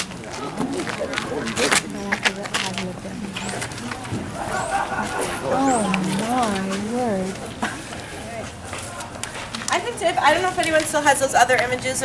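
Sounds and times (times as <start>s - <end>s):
low indistinct group talk: 0.0s - 12.0s.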